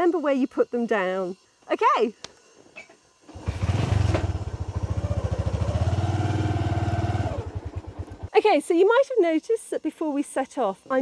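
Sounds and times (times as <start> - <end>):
motorcycle engine kick-started: 3.3 - 8.3.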